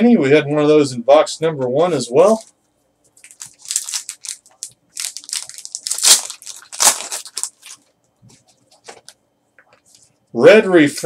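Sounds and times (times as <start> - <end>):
foil wrapper tearing and crinkling: 3.2 - 7.9.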